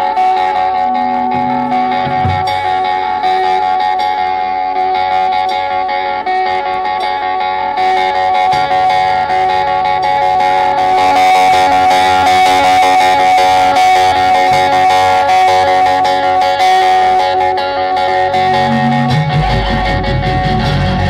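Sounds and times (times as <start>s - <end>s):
electric guitar figure: 0.0s - 21.0s
live rock band: 0.0s - 21.0s.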